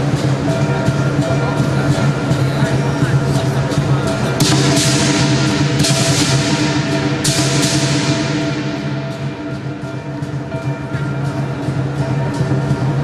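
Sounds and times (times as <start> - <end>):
clashing cymbals: 0.0 - 13.0
drum beating: 0.0 - 13.0.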